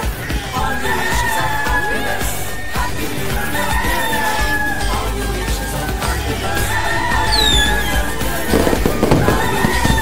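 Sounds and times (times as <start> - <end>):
background music: 0.0 - 10.0
crackling fireworks: 7.2 - 10.0.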